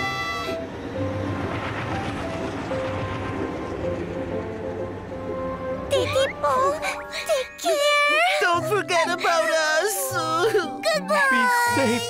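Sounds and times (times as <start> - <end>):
train rumbling along track: 0.0 - 9.8
background music: 0.0 - 12.0.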